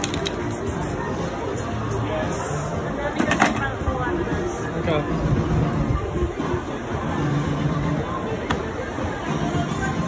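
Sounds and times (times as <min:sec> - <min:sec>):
background talk: 0:00.0 - 0:10.0.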